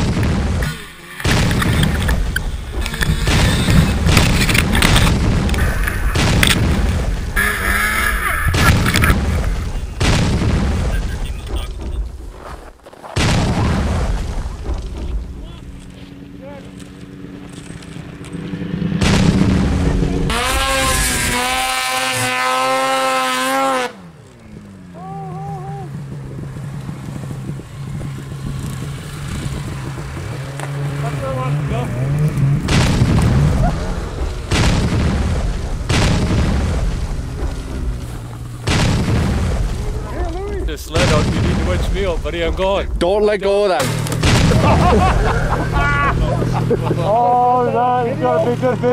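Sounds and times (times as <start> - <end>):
snowmobile engine revving: 0.0 - 12.1, 13.6 - 48.9.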